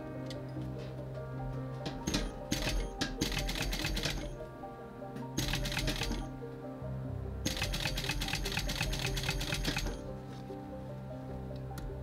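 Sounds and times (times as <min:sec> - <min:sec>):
background music: 0:00.0 - 0:12.0
sewing machine stitching leather: 0:02.1 - 0:04.3, 0:07.5 - 0:10.0.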